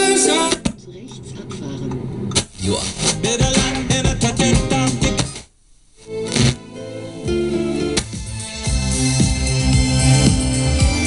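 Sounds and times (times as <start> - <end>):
guitar music from radio loudspeaker: 0.0 - 11.0.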